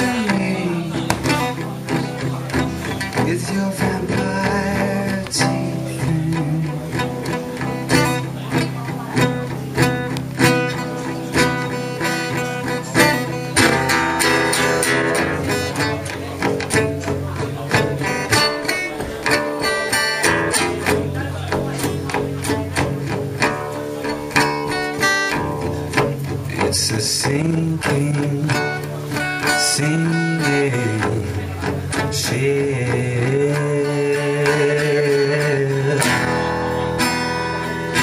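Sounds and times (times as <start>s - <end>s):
band playing instrumental: 0.0s - 38.0s.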